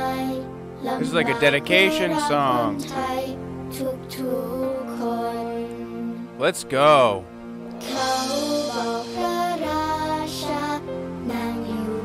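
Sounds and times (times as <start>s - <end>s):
girl singing slow melody: 0.0s - 6.4s, 7.8s - 12.0s
soft instrumental accompaniment: 0.0s - 12.0s.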